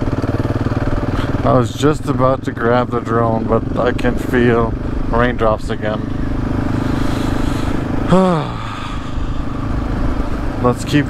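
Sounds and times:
motorcycle engine running: 0.0s - 11.0s
person groaning: 7.0s - 9.7s.

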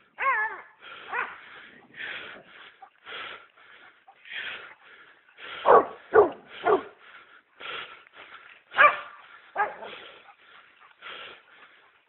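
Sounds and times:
rhythmic huffing breaths: 0.0s - 12.0s
dog barking: 0.2s - 1.4s, 5.6s - 7.0s, 8.7s - 10.3s.

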